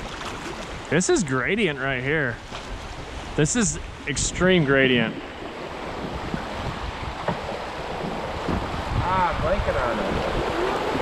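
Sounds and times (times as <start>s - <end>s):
whitewater rushing over rocks: 4.2s - 11.0s.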